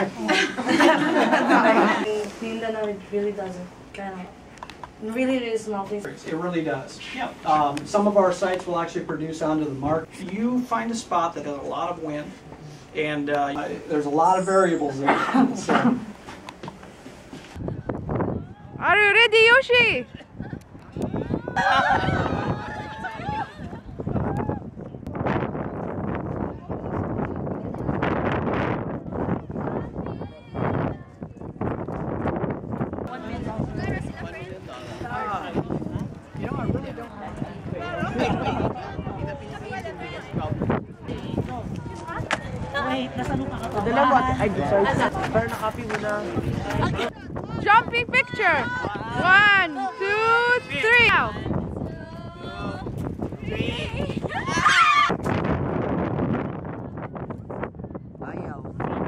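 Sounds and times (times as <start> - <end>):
wind buffeting the microphone: 15.2 - 59.0.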